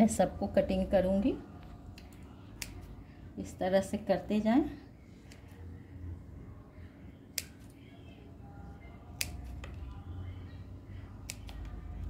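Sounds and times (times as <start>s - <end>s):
low steady hum: 0.0s - 12.0s
scissors snipping plant stem: 2.0s - 2.9s, 7.3s - 7.7s, 9.2s - 9.8s, 11.2s - 11.8s.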